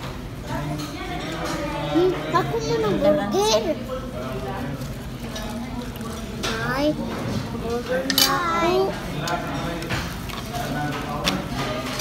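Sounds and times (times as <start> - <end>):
dining-room crowd voices: 0.0 - 12.0.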